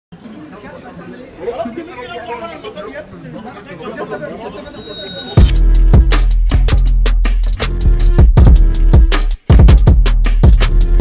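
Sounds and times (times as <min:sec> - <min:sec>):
people chattering: 0:00.1 - 0:05.5.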